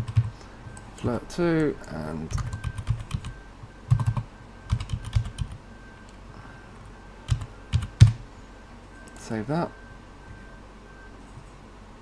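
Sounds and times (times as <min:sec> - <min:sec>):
loud keyboard clicks: 0:00.0 - 0:00.3, 0:02.3 - 0:03.3, 0:03.9 - 0:05.6, 0:07.3 - 0:08.2
keyboard typing: 0:00.0 - 0:05.6, 0:07.3 - 0:08.2.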